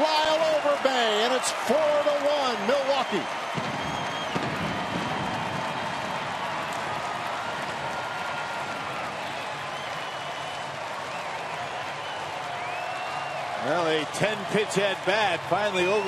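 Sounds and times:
crowd cheering and clapping: 0:00.0 - 0:16.0.

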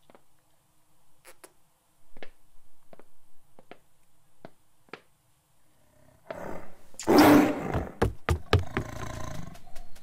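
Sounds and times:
sharp knocks and thuds: 0:07.7 - 0:10.0.

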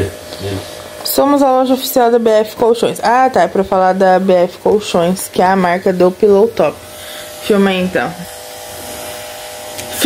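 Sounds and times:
electric motor hum: 0:00.0 - 0:10.0.

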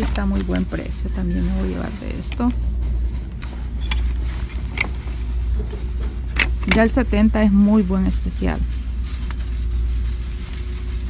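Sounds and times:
clothes hangers clicking: 0:00.0 - 0:00.8.

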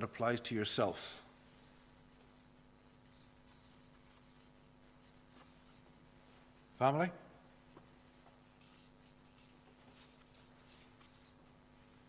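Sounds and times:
low steady hum: 0:00.0 - 0:12.0
marker pen writing on board: 0:02.2 - 0:05.9, 0:08.4 - 0:11.4.

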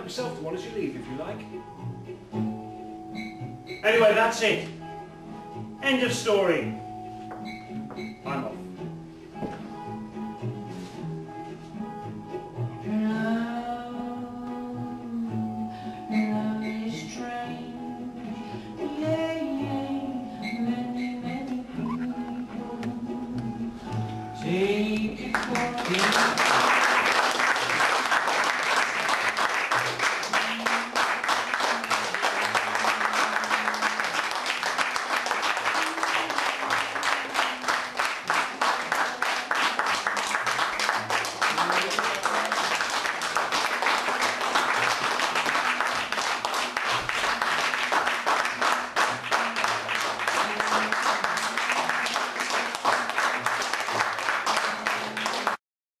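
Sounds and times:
audience applauding: 0:25.3 - 0:55.6.

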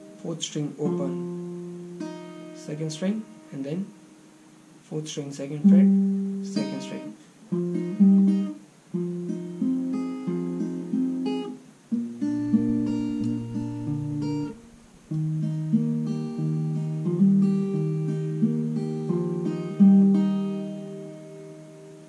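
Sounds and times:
fingerpicked acoustic guitar: 0:00.0 - 0:22.0.

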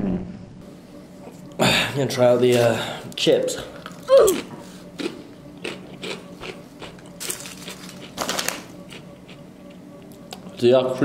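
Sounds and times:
chips crunching while chewed: 0:03.7 - 0:09.3.

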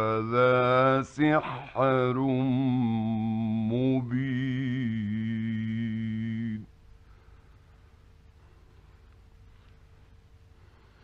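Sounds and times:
man chanting melodically: 0:00.0 - 0:06.7.

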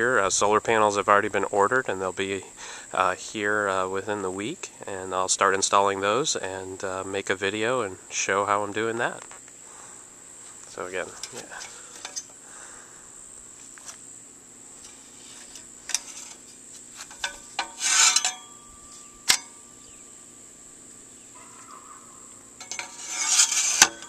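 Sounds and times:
metal clinks and rubbing: 0:11.1 - 0:12.3, 0:14.8 - 0:19.7, 0:22.6 - 0:24.0
high-pitched insect drone: 0:14.0 - 0:24.0.

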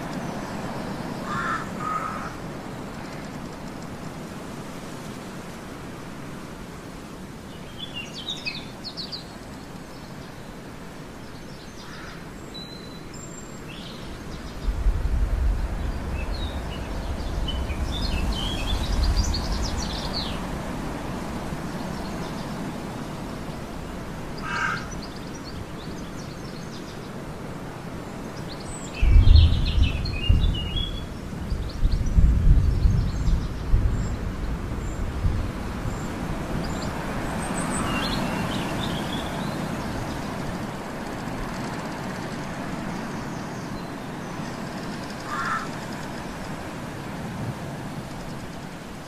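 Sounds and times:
steady background noise: 0:00.0 - 0:32.6, 0:33.3 - 0:49.0
bird calls: 0:00.1 - 0:02.4, 0:11.3 - 0:14.7, 0:24.3 - 0:27.2, 0:35.9 - 0:46.6.

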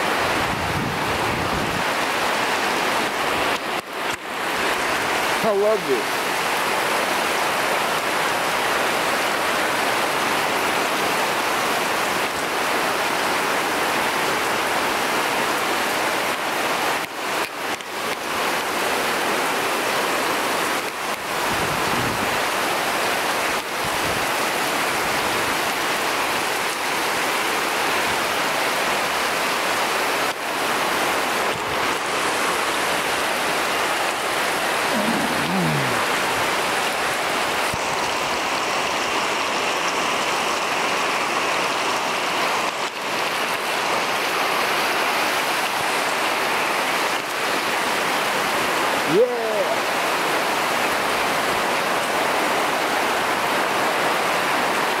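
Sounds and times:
heavy rain on foliage: 0:00.0 - 0:55.0.

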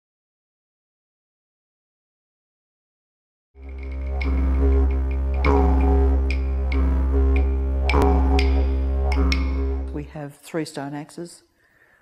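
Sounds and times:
didgeridoo drone: 0:03.6 - 0:10.2
sharp percussive taps: 0:03.7 - 0:09.9.

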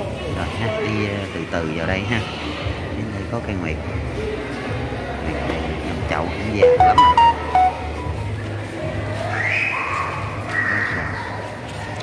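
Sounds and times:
short electronic beeps: 0:06.6 - 0:08.2.

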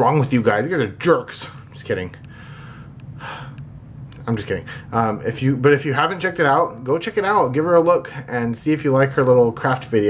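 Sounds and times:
man breathing: 0:01.4 - 0:03.7, 0:04.6 - 0:05.0.

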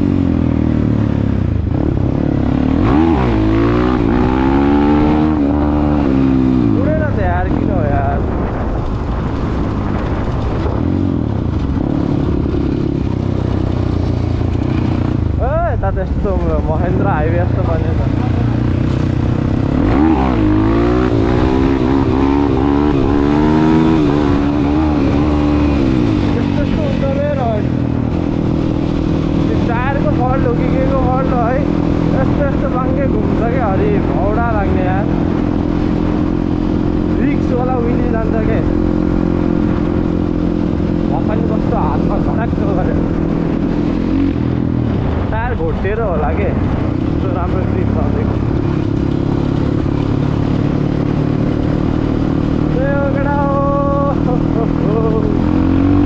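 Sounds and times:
dirt bike engine revving: 0:00.0 - 0:08.6, 0:09.5 - 0:15.6, 0:16.2 - 0:45.3, 0:46.2 - 0:56.0.

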